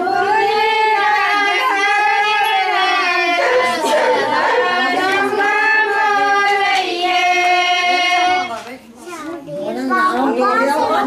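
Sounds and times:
women singing without instruments: 0:00.0 - 0:08.6.

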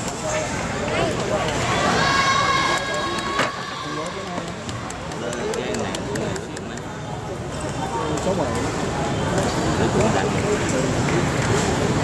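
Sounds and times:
voices talking indoors: 0:00.0 - 0:11.8.

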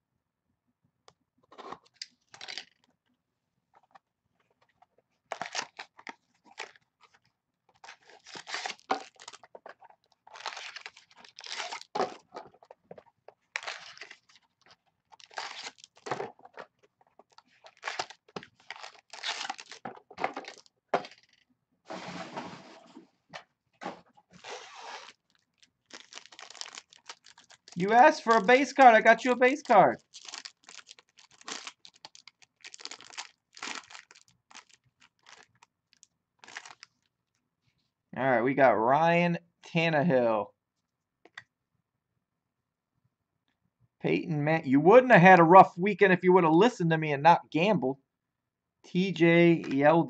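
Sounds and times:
foil and cardboard tearing: 0:07.9 - 0:09.4, 0:10.3 - 0:11.9, 0:13.6 - 0:14.4, 0:15.2 - 0:16.2, 0:17.7 - 0:21.3, 0:24.4 - 0:25.2, 0:25.9 - 0:28.5, 0:30.0 - 0:35.5.

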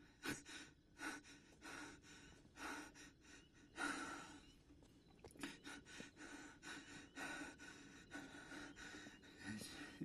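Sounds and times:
person breathing heavily: 0:00.0 - 0:04.6, 0:05.3 - 0:10.0.

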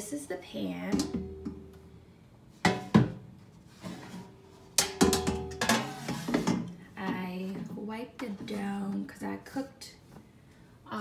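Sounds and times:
metal pan and basket clanking: 0:04.7 - 0:07.2.

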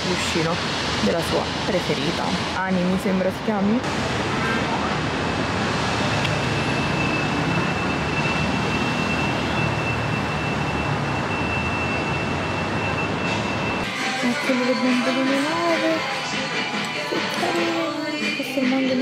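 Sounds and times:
passing traffic: 0:00.0 - 0:19.0.

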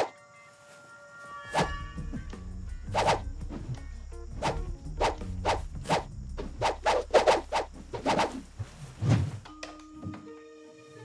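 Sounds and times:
low sustained bass: 0:01.7 - 0:08.8
sharp percussive hits and swishes: 0:02.9 - 0:03.8, 0:04.4 - 0:09.4.

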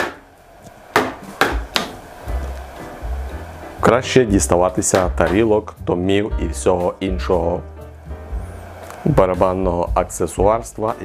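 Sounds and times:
drumsticks hitting drum kit: 0:01.0 - 0:02.6, 0:04.9 - 0:05.6
low drum resonance: 0:01.6 - 0:11.0.

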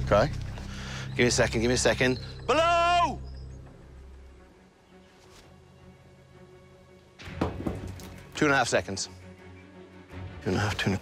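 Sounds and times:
man shouting: 0:02.5 - 0:03.2.

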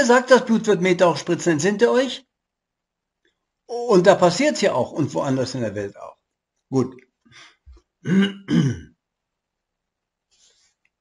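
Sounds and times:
faint small noises: 0:02.1 - 0:11.0
man clearing his throat: 0:08.0 - 0:09.0.

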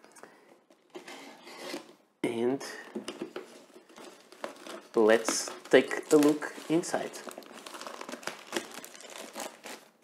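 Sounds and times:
plastic rustling: 0:03.1 - 0:10.0.

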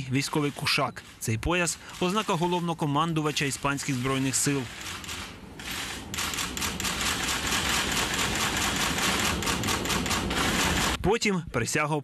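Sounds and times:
camera shutters clicking: 0:03.3 - 0:11.0.

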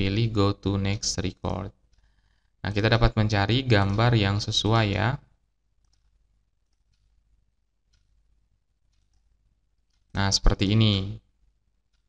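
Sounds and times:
person speaking: 0:00.0 - 0:01.9, 0:02.6 - 0:05.4, 0:10.0 - 0:11.4
faint mouse clicks: 0:01.8 - 0:02.4, 0:05.8 - 0:07.2, 0:07.9 - 0:08.2, 0:08.8 - 0:10.2.

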